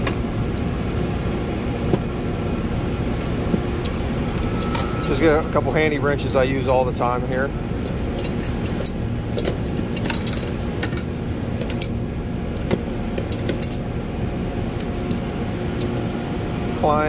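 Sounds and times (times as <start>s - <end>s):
low background hum: 0.0s - 17.0s
wrenches clinking in toolbox: 7.8s - 12.0s.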